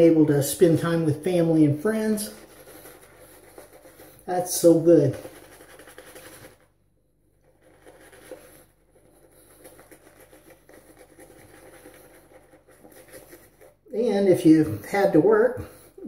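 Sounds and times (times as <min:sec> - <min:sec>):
razor scraping stubble: 0:07.4 - 0:15.1.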